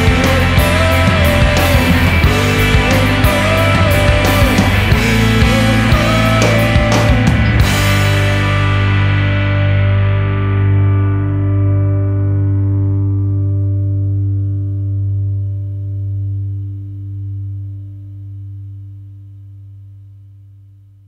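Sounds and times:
distorted guitar chord ringing out: 0:00.0 - 0:20.5.

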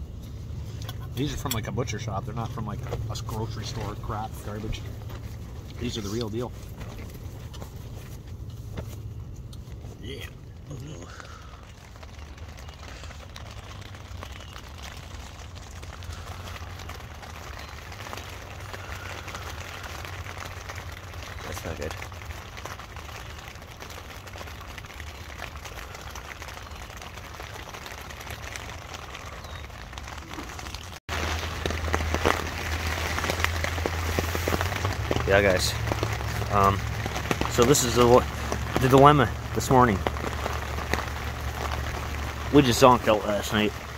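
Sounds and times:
rain on tent fly: 0:00.0 - 0:43.9.

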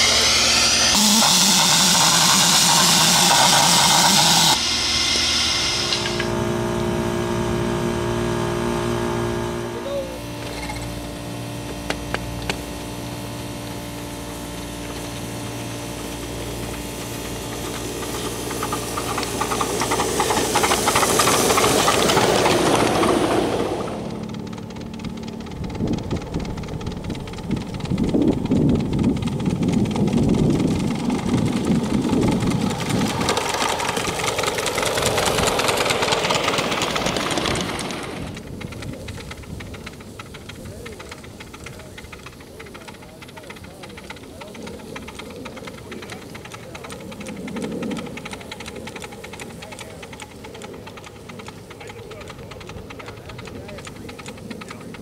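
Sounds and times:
miniature trains running: 0:00.0 - 0:08.2, 0:09.0 - 0:55.0
steam locomotive hissing: 0:00.0 - 0:08.4, 0:09.6 - 0:55.0.

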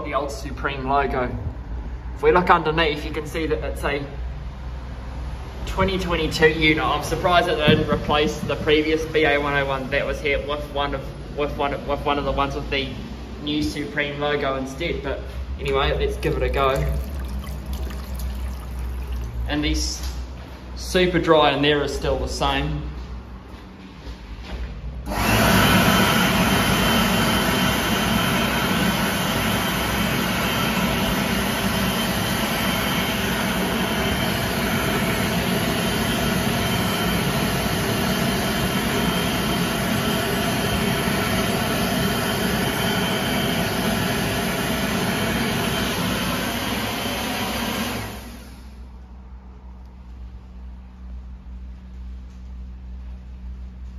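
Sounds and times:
electric hand dryer running: 0:16.3 - 0:19.3, 0:25.1 - 0:48.7.

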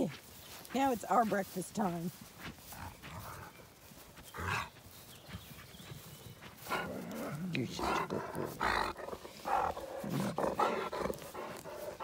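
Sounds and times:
dog panting and snuffling: 0:00.6 - 0:12.0.

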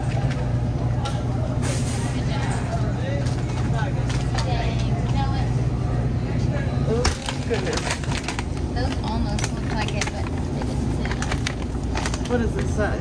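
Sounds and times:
freezer cases humming: 0:00.0 - 0:13.0.

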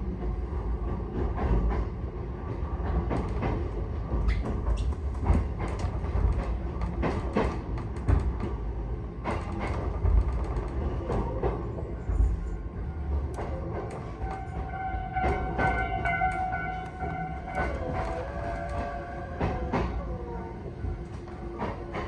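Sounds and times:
train running gear rumble: 0:00.0 - 0:22.0.

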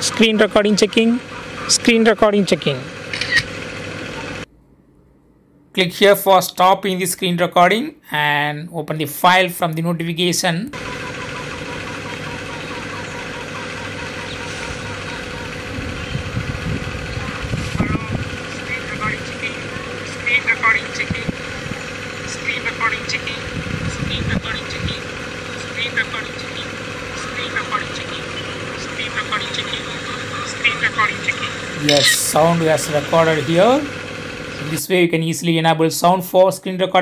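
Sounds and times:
steady background hum: 0:00.0 - 0:37.0
low rumbles: 0:13.2 - 0:34.8.

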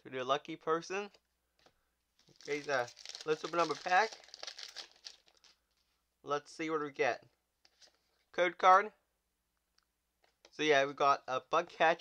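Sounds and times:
foil wrapper crinkling: 0:02.2 - 0:05.8.

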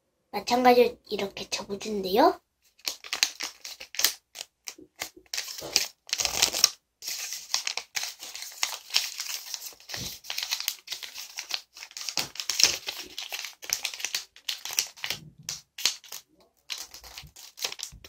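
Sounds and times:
paper rustling and crinkling: 0:02.7 - 0:18.0.

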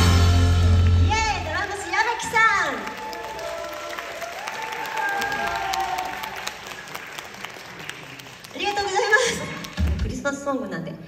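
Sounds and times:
audience clapping: 0:00.6 - 0:10.2
voices rising over clapping: 0:01.9 - 0:09.8.

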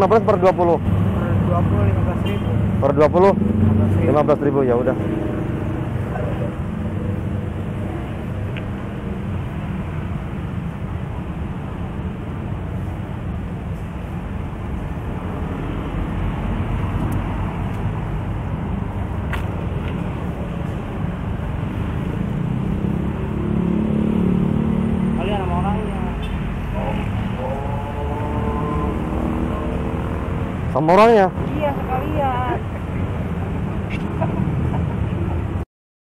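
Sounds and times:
road traffic rumble: 0:00.0 - 0:35.6.

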